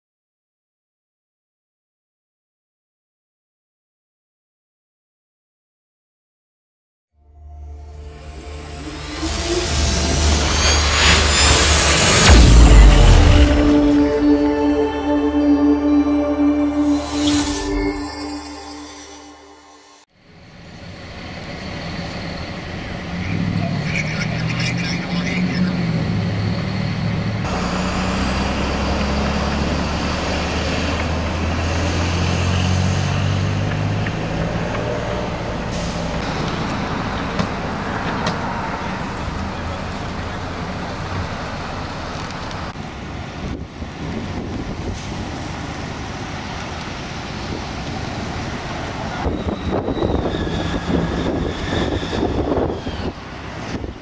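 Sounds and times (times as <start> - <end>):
music track: 7.2 - 20.0
deep engine drone: 7.2 - 54.0
street traffic: 7.4 - 54.0.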